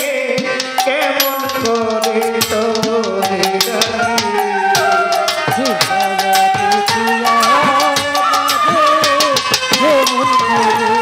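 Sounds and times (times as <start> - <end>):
hand drum beat: 0.1 - 11.0
violin melody in long notes: 0.2 - 11.0.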